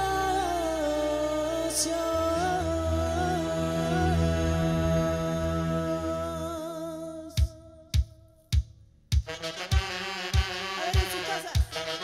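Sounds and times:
singer holding long note: 0:00.0 - 0:07.7
bass line: 0:00.0 - 0:08.0.

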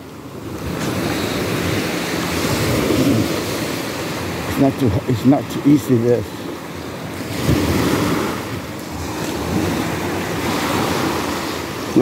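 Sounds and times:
waves washing over rocks: 0:00.0 - 0:12.0.

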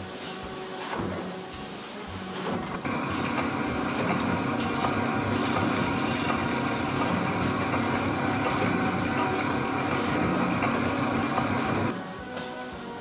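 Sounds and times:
factory machinery clatter: 0:02.4 - 0:12.0.

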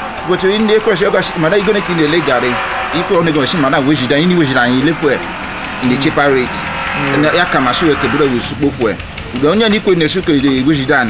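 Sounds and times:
man speaking: 0:00.2 - 0:11.0.

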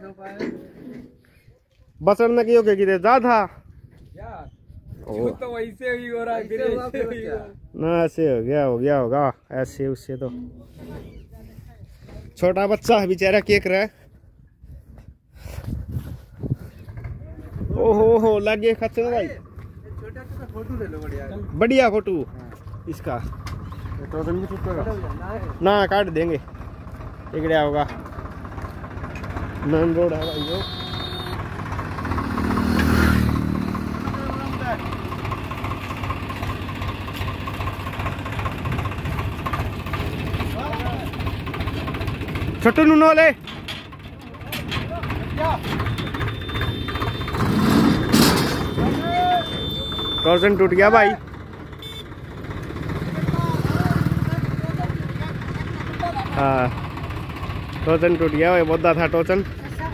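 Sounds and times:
tractor engine idling: 0:16.7 - 0:59.9.

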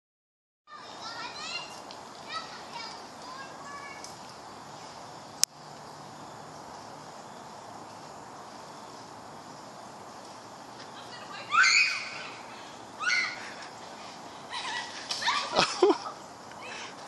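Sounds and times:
steady background hiss: 0:00.7 - 0:17.0
high-pitched chirping calls: 0:10.9 - 0:13.8.

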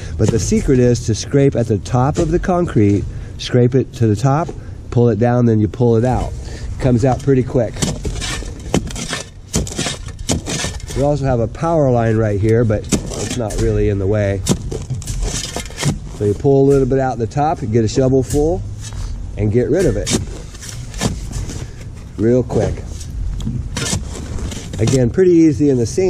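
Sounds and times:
shovel scraping and digging sand: 0:00.0 - 0:03.0, 0:06.1 - 0:21.8, 0:22.5 - 0:25.8
steady low rumble: 0:00.0 - 0:26.0.

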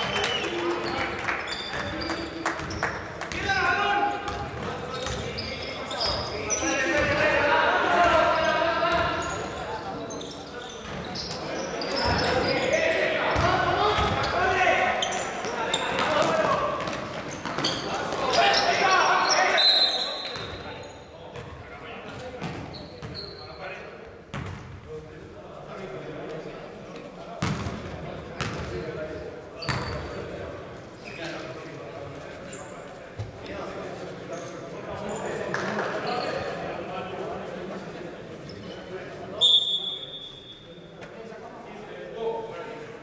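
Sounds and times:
basketball bouncing on court: 0:04.3 - 0:05.3, 0:13.4 - 0:14.4, 0:24.3 - 0:24.8, 0:27.4 - 0:28.8
referee whistle: 0:19.2 - 0:20.4, 0:39.4 - 0:40.6.

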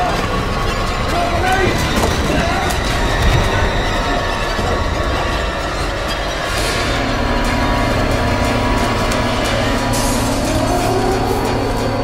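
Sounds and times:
grinding screeching horror soundtrack: 0:00.0 - 0:12.0.

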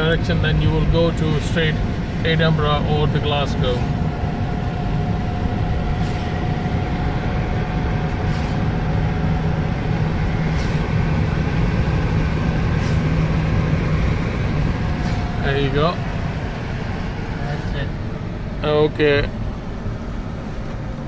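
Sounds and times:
low engine hum: 0:00.0 - 0:21.0
road drone inside car: 0:00.0 - 0:21.0.

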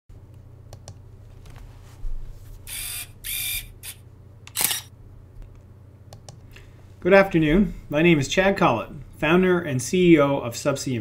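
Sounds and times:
low steady hum: 0:00.1 - 0:11.0
camera shutter click: 0:02.7 - 0:04.9
short mechanical bursts: 0:02.7 - 0:04.9.

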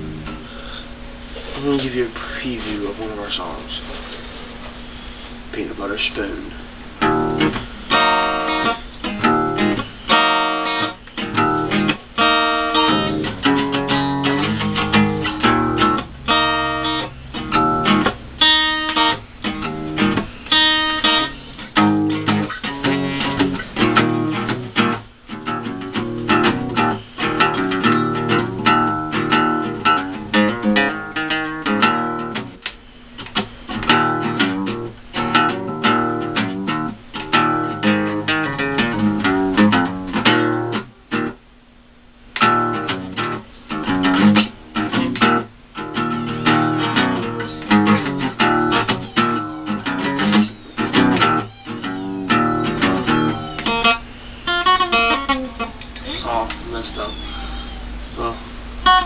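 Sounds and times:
acoustic guitar playing: 0:00.0 - 0:03.6, 0:06.8 - 0:41.4, 0:42.2 - 0:59.0.

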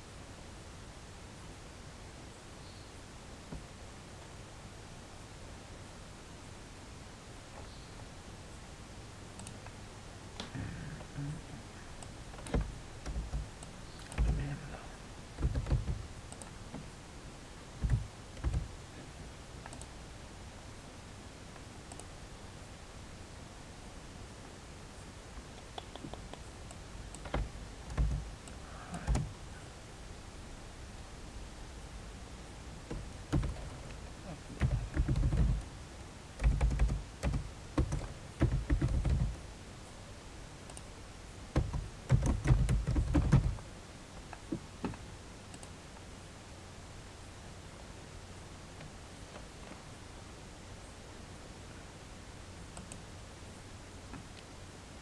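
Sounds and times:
mouse clicks: 0:09.4 - 0:09.8, 0:19.6 - 0:19.9, 0:25.5 - 0:29.3, 0:40.7 - 0:40.9, 0:44.3 - 0:45.8, 0:52.7 - 0:53.0
computer keyboard typing: 0:12.4 - 0:14.6, 0:15.4 - 0:16.5, 0:17.8 - 0:18.7, 0:25.6 - 0:29.3, 0:32.9 - 0:33.8, 0:34.6 - 0:35.7, 0:36.4 - 0:39.4, 0:41.6 - 0:43.6.

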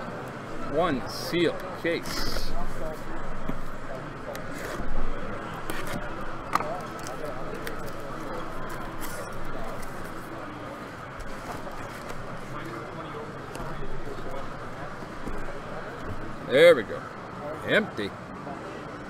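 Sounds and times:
murmur of voices: 0:00.0 - 0:19.0.

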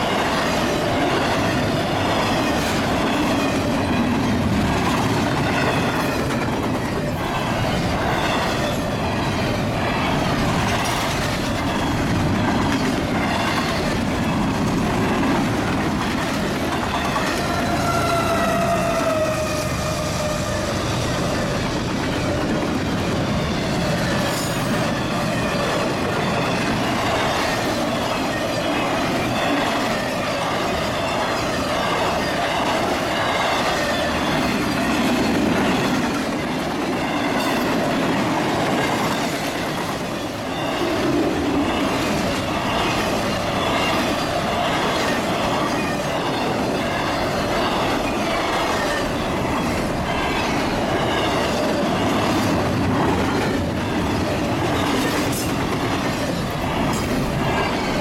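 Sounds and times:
train wheels rumbling on rails: 0:00.0 - 0:58.0.

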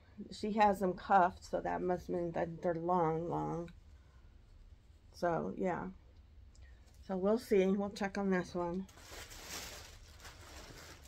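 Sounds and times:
plastic bag and cloth rustling: 0:08.4 - 0:11.0.

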